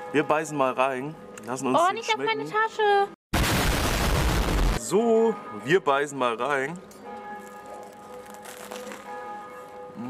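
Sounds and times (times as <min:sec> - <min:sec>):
bells ringing faintly: 0:05.0 - 0:10.0.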